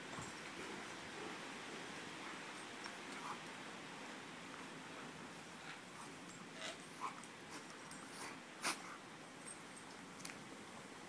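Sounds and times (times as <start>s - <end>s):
dogs play-fighting mouth noises: 0.1s - 3.7s, 4.5s - 10.4s.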